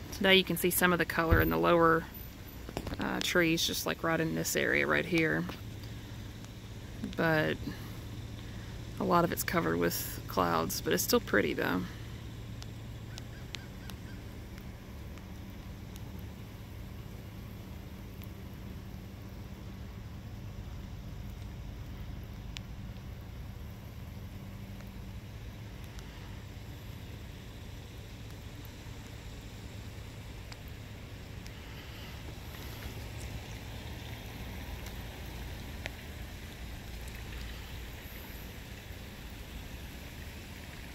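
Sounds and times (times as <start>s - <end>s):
faint hiss: 0.0s - 40.9s
low steady hum: 0.0s - 40.9s
faint light ticks: 5.4s - 8.7s, 12.5s - 16.5s, 18.1s - 20.0s, 20.7s - 27.2s, 30.4s - 39.3s.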